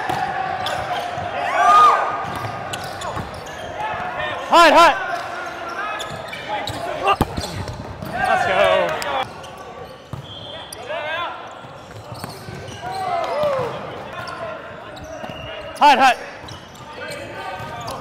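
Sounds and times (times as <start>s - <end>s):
players shouting calls: 0.0s - 9.4s, 12.4s - 16.4s.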